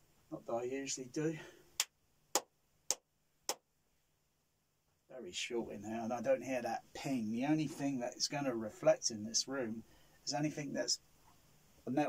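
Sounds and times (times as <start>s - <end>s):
sharp hand clap: 1.8s - 3.6s.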